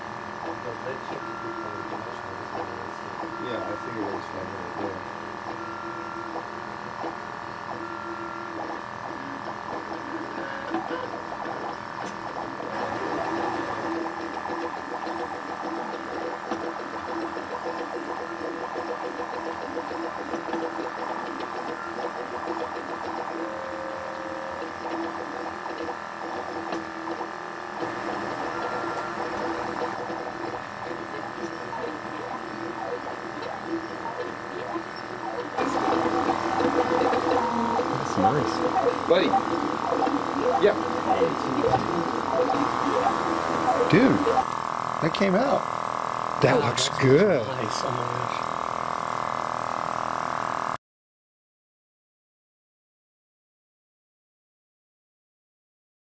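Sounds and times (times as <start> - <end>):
stepper motors whining and buzzing: 0.0 - 49.1.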